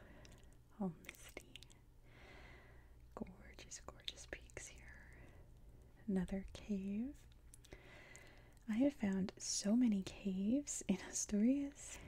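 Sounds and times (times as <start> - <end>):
quiet whispering: 0.0 - 1.9, 3.0 - 12.0
soft mouth sounds: 0.2 - 1.8.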